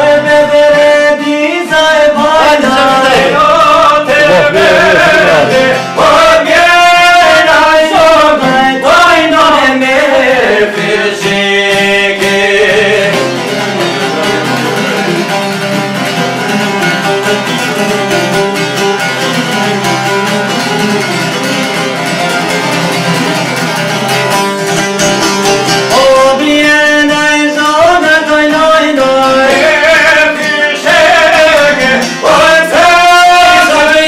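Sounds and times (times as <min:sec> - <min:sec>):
man singing: 0:00.0 - 0:15.7, 0:25.7 - 0:34.0
plucked lute folk music: 0:00.0 - 0:34.0.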